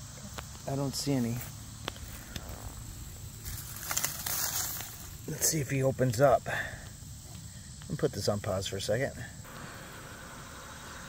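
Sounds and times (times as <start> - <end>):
faint outdoor background hiss: 0.0 - 11.0.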